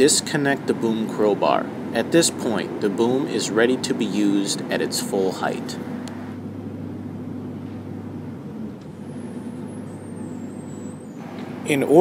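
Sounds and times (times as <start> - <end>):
forklift engine humming: 4.6 - 12.0.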